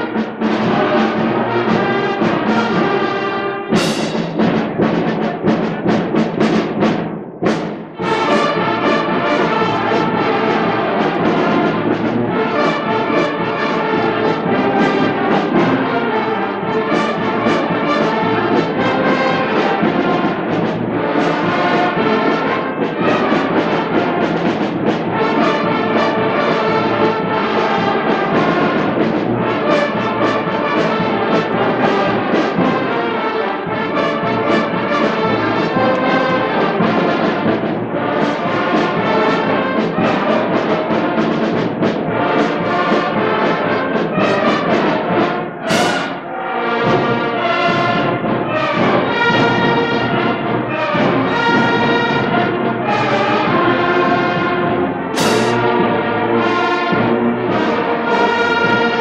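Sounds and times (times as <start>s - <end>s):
concert band playing: 0.0s - 59.0s.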